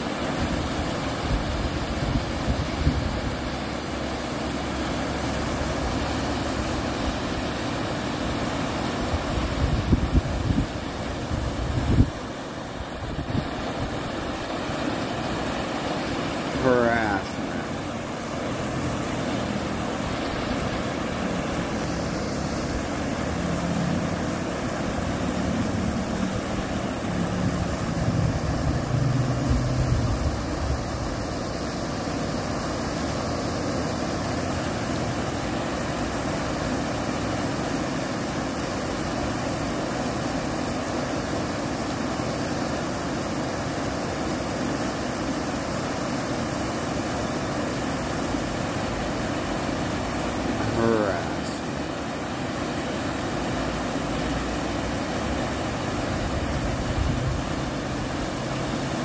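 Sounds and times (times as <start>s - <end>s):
river water pouring over weir: 0.0s - 59.0s
low drone: 16.6s - 31.1s.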